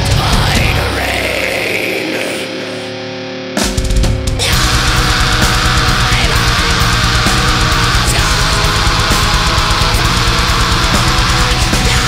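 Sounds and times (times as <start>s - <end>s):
drums and bass: 0.0s - 2.6s, 3.6s - 12.0s
distorted guitar chord ringing: 0.0s - 12.0s.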